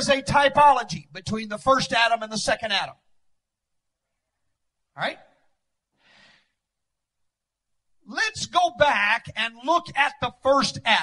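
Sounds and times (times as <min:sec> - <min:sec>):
man speaking: 0:00.0 - 0:03.0, 0:04.9 - 0:05.4, 0:08.0 - 0:11.0
man breathing into microphone: 0:05.9 - 0:06.6.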